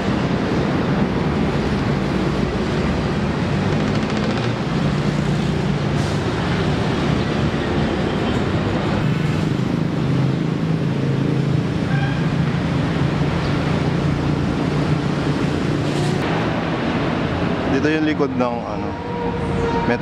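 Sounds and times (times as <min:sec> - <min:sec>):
city traffic rumble: 0:00.0 - 0:20.0.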